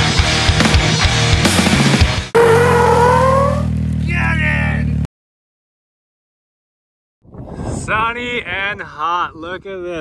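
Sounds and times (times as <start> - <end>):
heavy rock music with drums: 0.0 - 2.3
rising sliding tone: 2.4 - 3.8.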